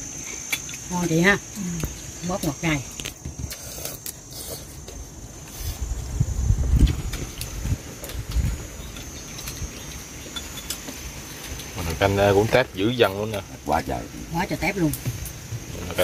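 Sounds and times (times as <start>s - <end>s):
insects trilling: 0.0s - 16.0s.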